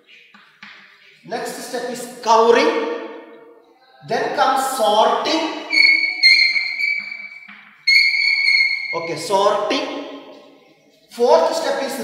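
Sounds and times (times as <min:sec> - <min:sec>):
chalk squeaking on blackboard: 0:05.7 - 0:09.3.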